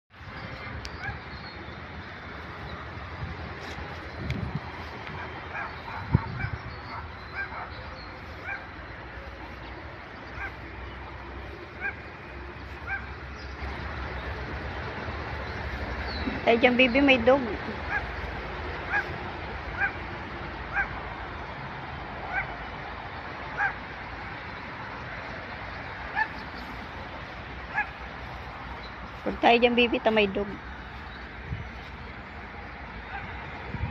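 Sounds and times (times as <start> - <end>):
dog barking: 5.2 - 7.8, 8.4 - 8.7, 11.8 - 12.0, 12.8 - 13.1, 17.9 - 18.2, 18.9 - 19.2, 19.8 - 20.0, 20.7 - 21.0, 22.3 - 22.6, 23.6 - 23.8, 26.1 - 26.4, 27.7 - 28.0, 33.1 - 33.4.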